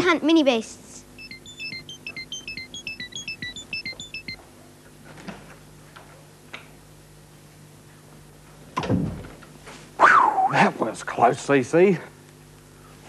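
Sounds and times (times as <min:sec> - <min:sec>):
electronic beeping tune: 0:01.2 - 0:04.4.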